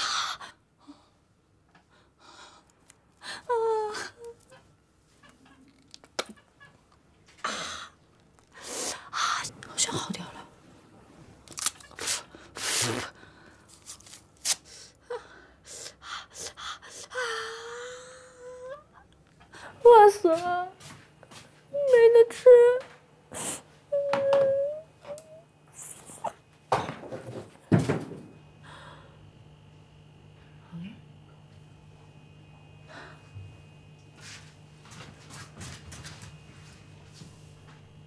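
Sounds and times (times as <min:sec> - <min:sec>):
person whimpering and crying: 0:03.3 - 0:04.6, 0:17.0 - 0:19.0
sniffs: 0:12.0 - 0:13.2.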